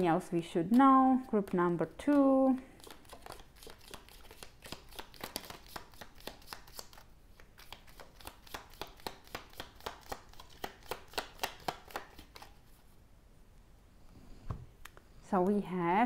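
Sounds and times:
cards being shuffled: 0:01.2 - 0:12.8.

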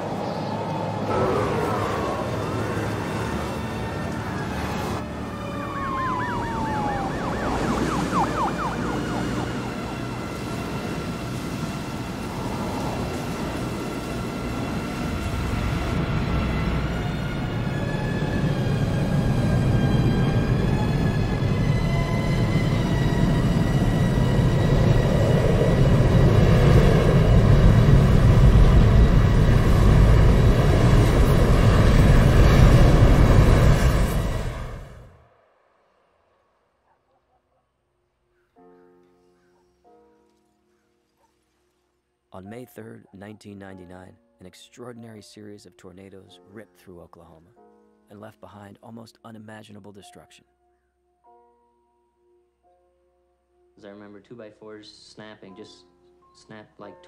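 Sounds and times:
siren wailing: 0:00.0 - 0:11.4, 0:16.0 - 0:33.5
tense music: 0:00.0 - 0:36.5
deep rushing wind: 0:05.3 - 0:35.2.

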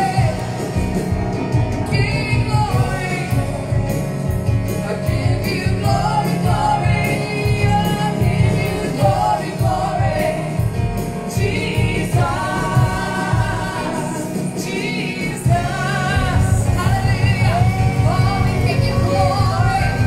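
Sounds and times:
person singing gospel song: 0:00.0 - 0:01.0, 0:01.8 - 0:20.0
keyboard accompaniment: 0:00.0 - 0:20.0.

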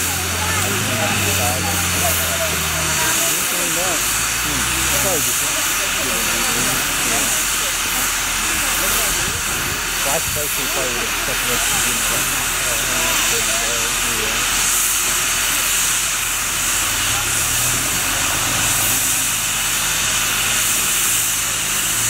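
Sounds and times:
people talking: 0:00.0 - 0:22.0
steam hissing: 0:00.0 - 0:22.0.

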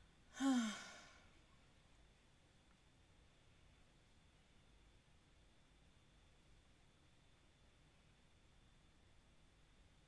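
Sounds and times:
woman sighing: 0:00.3 - 0:01.2.

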